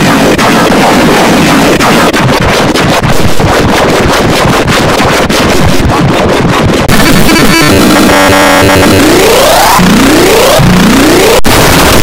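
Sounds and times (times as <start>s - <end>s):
distorted noisy din: 0.0s - 12.0s.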